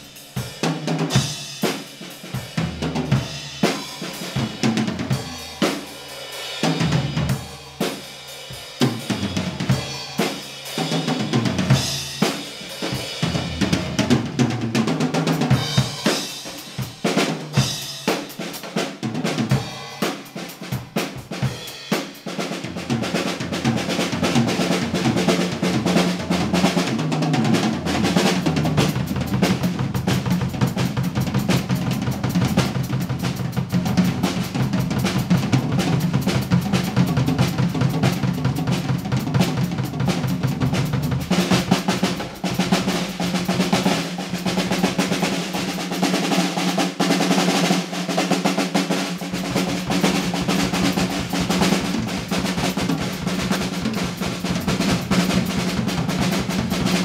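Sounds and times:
cymbals: 0:00.0 - 0:14.0, 0:15.5 - 0:23.2
snare drum: 0:00.0 - 0:57.0.

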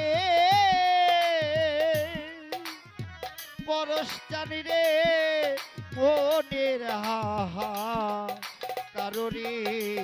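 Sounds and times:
drum beats: 0:00.0 - 0:10.0
man singing with vibrato: 0:00.0 - 0:10.0.

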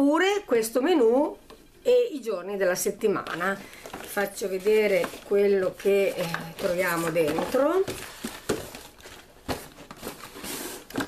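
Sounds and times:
paper rustling and sliding: 0:03.7 - 0:11.0.

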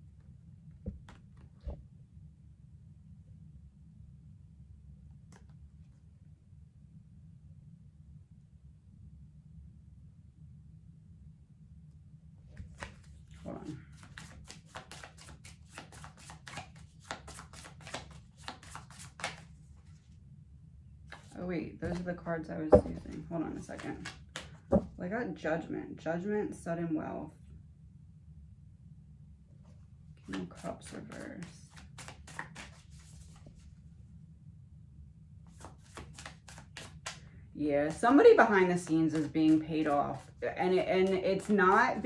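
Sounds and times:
cards being shuffled: 0:12.6 - 0:20.0, 0:21.1 - 0:22.1, 0:22.8 - 0:24.9, 0:30.3 - 0:33.6, 0:35.5 - 0:37.3, 0:37.9 - 0:42.0.

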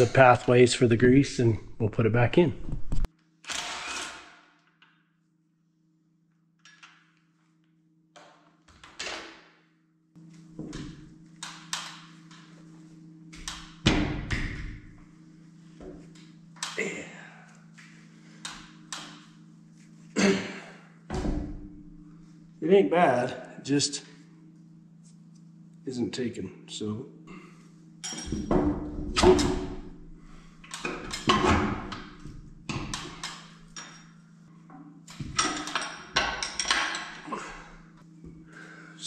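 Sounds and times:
steady low hum: 0:00.0 - 0:03.1, 0:10.1 - 0:39.0.

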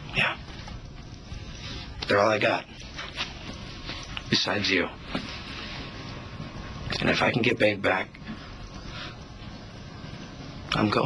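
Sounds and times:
low room tone hiss: 0:00.0 - 0:11.0.

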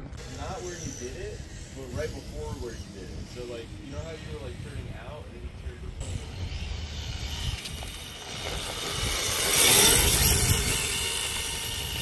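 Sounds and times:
electric motor whine: 0:00.0 - 0:12.0.

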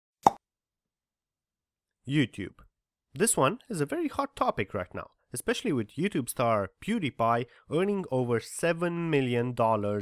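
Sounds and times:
short plop: 0:00.2 - 0:00.4.

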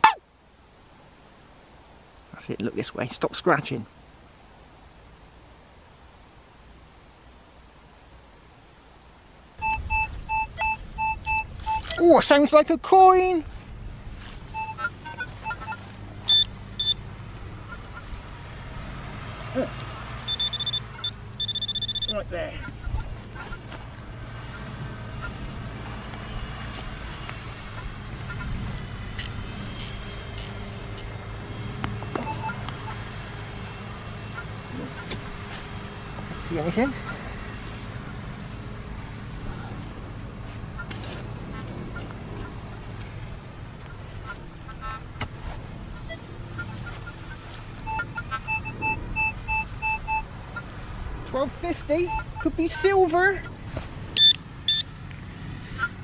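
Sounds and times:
metal detector beeps: 0:09.6 - 0:12.2, 0:14.5 - 0:17.0, 0:20.3 - 0:22.2, 0:32.2 - 0:32.6, 0:46.0 - 0:50.4, 0:51.8 - 0:53.0, 0:54.2 - 0:54.9.

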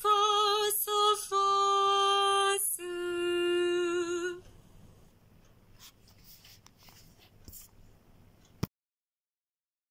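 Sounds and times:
woman singing: 0:00.0 - 0:04.5.

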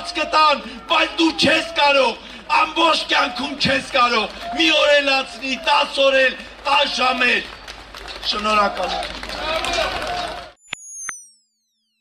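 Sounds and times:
man speaking outdoors: 0:00.0 - 0:10.0
high electronic tone falling in pitch: 0:10.6 - 0:12.0.

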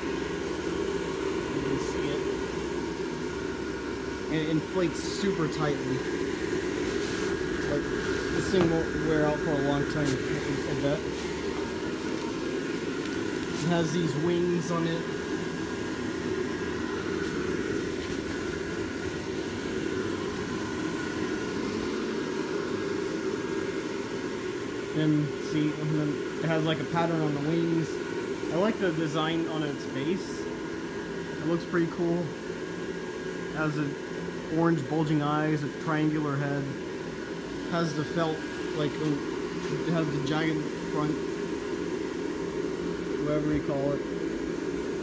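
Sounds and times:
blower fan whirring: 0:00.0 - 0:45.0.

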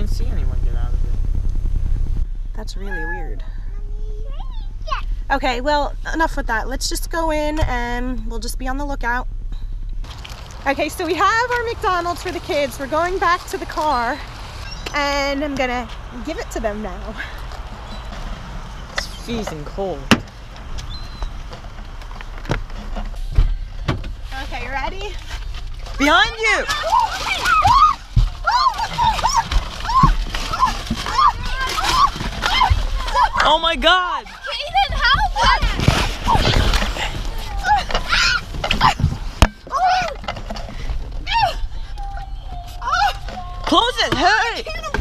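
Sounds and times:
car door knocks and clunks: 0:20.1 - 0:20.4, 0:22.4 - 0:24.2
high-pitched screams: 0:26.7 - 0:33.4, 0:37.5 - 0:39.0.

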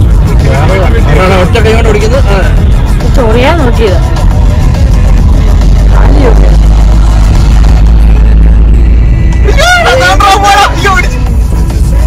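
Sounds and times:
road and wind noise: 0:00.0 - 0:12.0.

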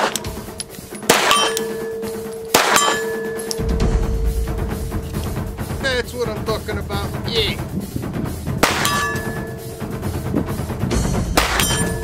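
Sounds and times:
steel target ringing: 0:00.0 - 0:07.3, 0:08.6 - 0:10.0, 0:11.4 - 0:12.0
pistol shot: 0:01.1 - 0:01.9, 0:02.5 - 0:03.2.

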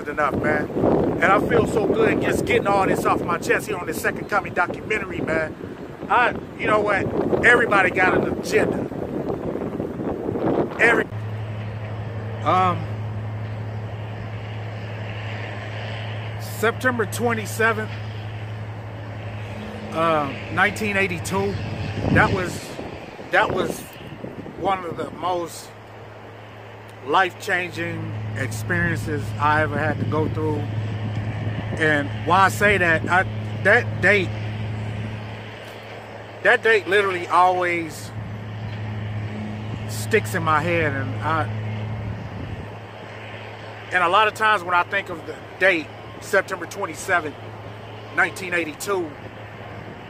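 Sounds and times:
low engine hum: 0:00.0 - 0:50.0.

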